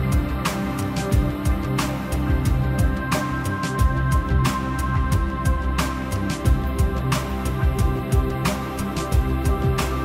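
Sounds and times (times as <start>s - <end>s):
instrumental music with steady beat: 0.0s - 10.0s.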